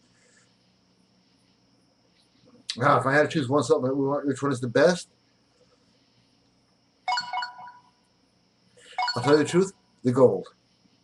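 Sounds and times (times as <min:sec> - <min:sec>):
faint high-pitched hum: 0:00.0 - 0:11.0.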